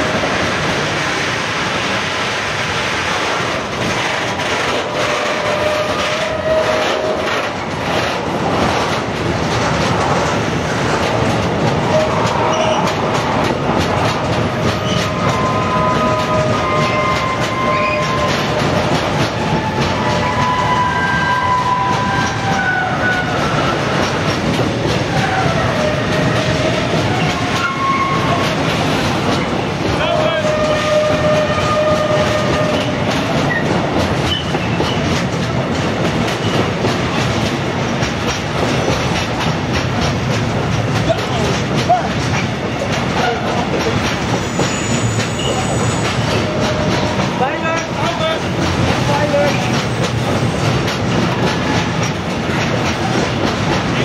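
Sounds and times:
train wheels clattering over rail joints: 0.0 - 54.0
high wheel squeals: 11.9 - 12.9, 14.8 - 18.7, 25.1 - 28.6, 44.4 - 47.2.

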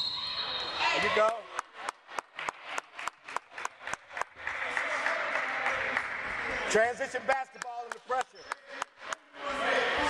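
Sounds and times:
applause and crowd noise: 1.1 - 9.2
rhythmic clapping: 1.2 - 6.4, 7.3 - 9.3.

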